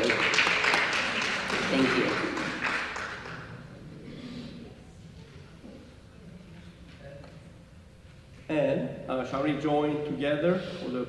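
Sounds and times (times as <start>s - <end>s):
congregation applauding: 0.0s - 3.7s.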